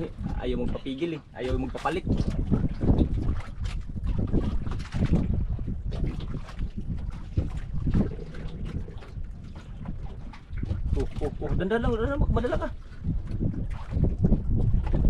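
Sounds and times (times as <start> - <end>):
water lapping against boat hull: 0.0 - 15.0
wind buffeting microphone: 0.0 - 15.0.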